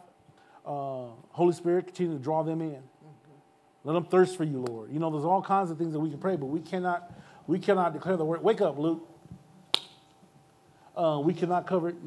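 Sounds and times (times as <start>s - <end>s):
faint steady hum: 0.0s - 12.0s
sharp click: 9.7s - 10.2s.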